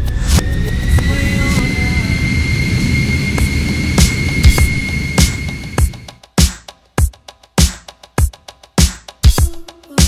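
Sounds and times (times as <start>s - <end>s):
jet engines rumbling: 0.0s - 6.2s
thin high engine whine: 0.0s - 6.2s.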